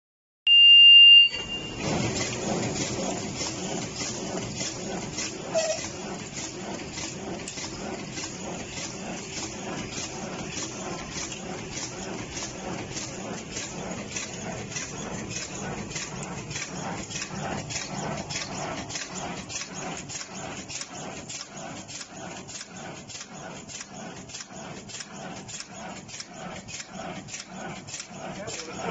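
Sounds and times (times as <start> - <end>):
loud electronic beep: 0.5 - 1.8
packing line machinery running: 1.3 - 28.9.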